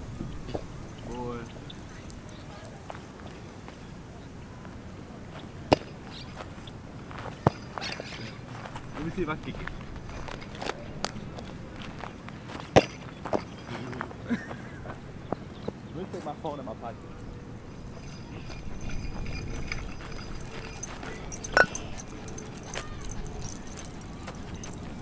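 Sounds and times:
faint voices: 0.0s - 25.0s
footsteps on grass and dirt: 4.6s - 16.4s.

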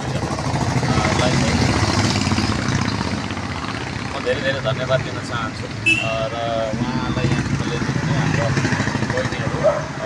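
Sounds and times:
vehicle engine running: 0.0s - 5.6s.

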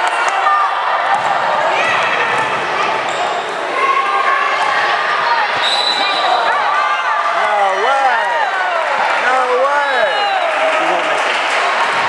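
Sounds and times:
spectators talking and calling out: 0.0s - 12.0s
referee's whistle: 5.6s - 6.4s.

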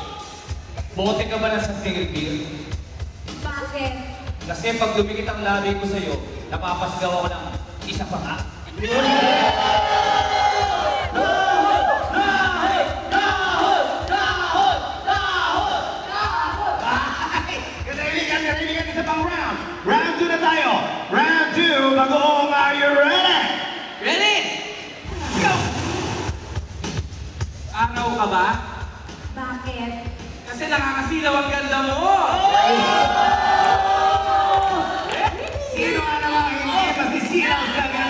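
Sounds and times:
background music with steady beat: 0.0s - 20.4s, 25.0s - 38.0s
long shout over pa system: 8.8s - 16.9s.

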